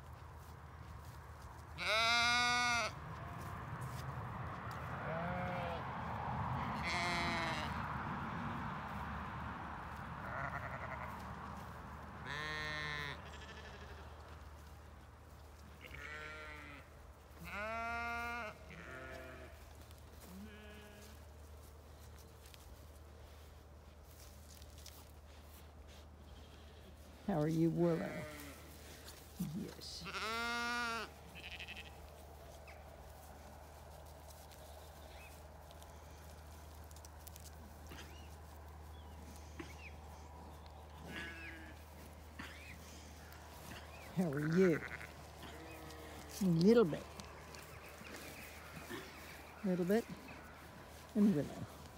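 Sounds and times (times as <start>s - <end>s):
soft scratchy rustle: 0.0s - 51.9s
sheep bleating: 1.8s - 3.5s, 5.0s - 5.8s, 6.8s - 7.8s, 10.2s - 11.2s, 12.2s - 14.2s, 15.8s - 19.6s, 20.2s - 21.2s, 27.9s - 29.0s, 30.0s - 32.0s, 41.0s - 51.8s.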